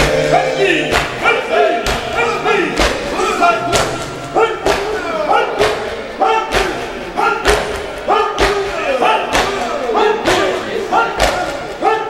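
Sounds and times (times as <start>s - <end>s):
men chanting: 0.0s - 12.0s
men striking their chests: 0.0s - 12.0s.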